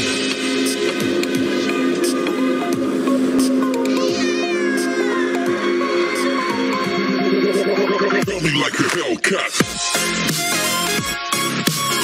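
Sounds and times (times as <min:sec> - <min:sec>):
background music: 0:00.0 - 0:12.0
cat meow falling in pitch: 0:03.9 - 0:05.2.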